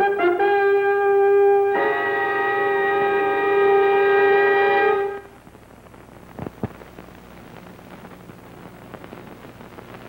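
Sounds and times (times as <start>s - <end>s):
brass fanfare chord: 0.0s - 5.3s
faint tape hiss: 0.0s - 10.0s.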